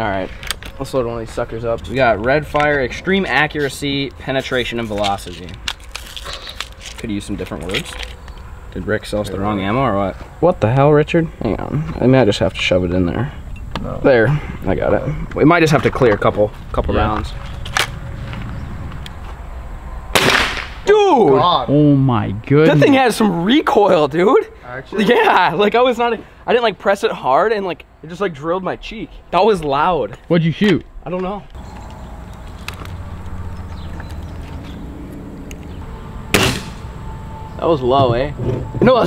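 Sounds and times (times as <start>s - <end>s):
pellet rifle shot: 20.1s - 20.8s, 36.3s - 36.9s
low steady hum: 27.2s - 39.0s.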